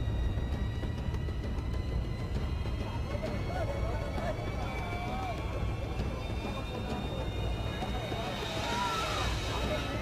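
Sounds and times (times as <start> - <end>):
indistinct crowd voices: 2.8 - 10.0.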